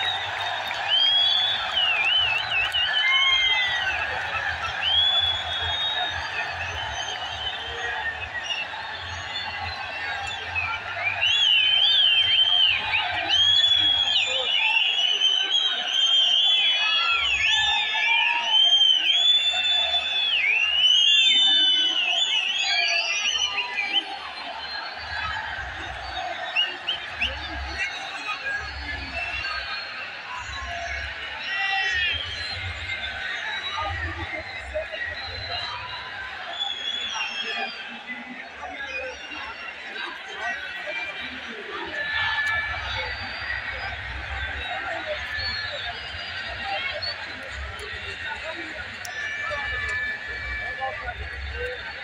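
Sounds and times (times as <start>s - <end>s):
high whistles from crowd: 0.0s - 52.0s
stadium crowd voices: 0.0s - 52.0s.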